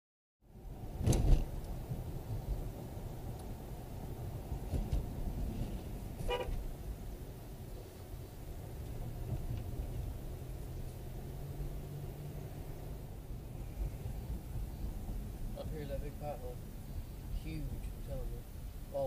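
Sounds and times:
car road noise rumble: 0.5s - 19.0s
loud thump: 1.0s - 1.5s
short car horn toot: 6.2s - 6.6s.

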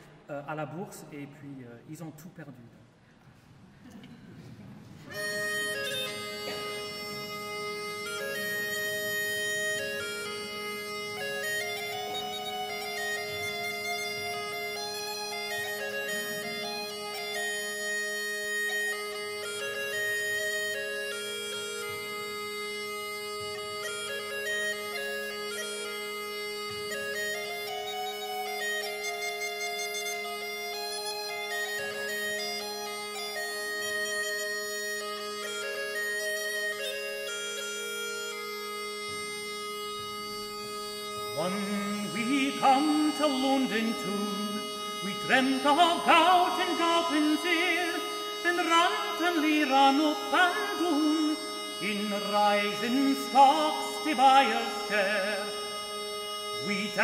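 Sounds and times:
bagpipe drone: 5.0s - 57.0s
bagpipe melody: 5.0s - 57.0s.

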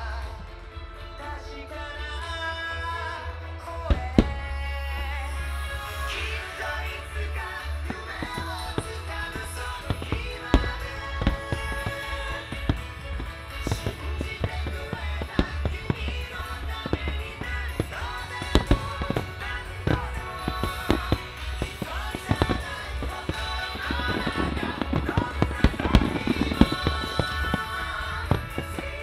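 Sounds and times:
music playing: 0.0s - 29.0s
firework shells bursting: 7.8s - 29.0s.

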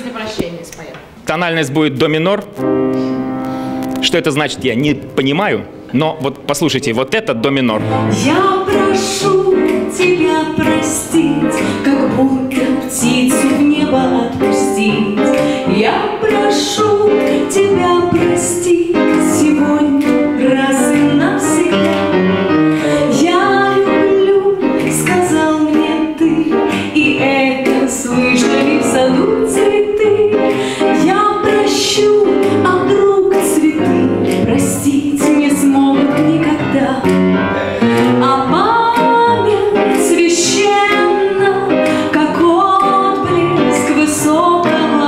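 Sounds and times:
piano accompaniment: 1.0s - 45.0s
woman singing a ballad: 8.0s - 37.1s, 38.0s - 45.0s.

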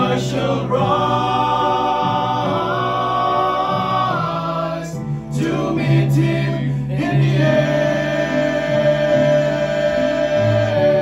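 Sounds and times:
men singing in close harmony: 0.0s - 11.0s.

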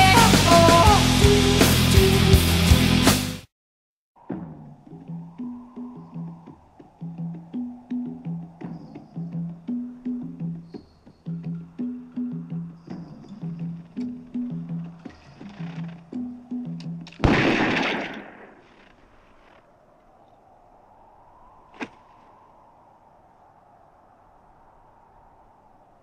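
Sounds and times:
film score with low pulse: 4.2s - 18.6s.

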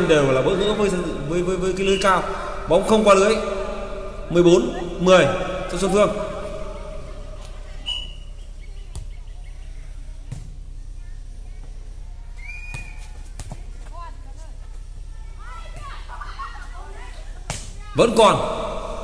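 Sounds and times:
players calling and shouting: 0.0s - 11.4s, 12.3s - 19.0s
low background hum: 0.0s - 19.0s.

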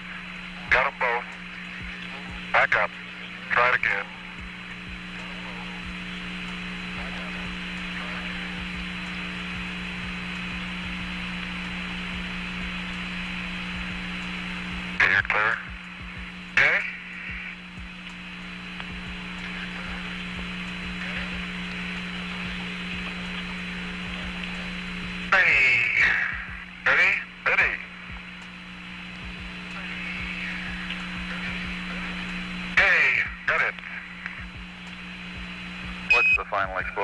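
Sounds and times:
radio hiss with low hum: 0.0s - 37.0s
radio transmission bursts: 0.0s - 37.0s.

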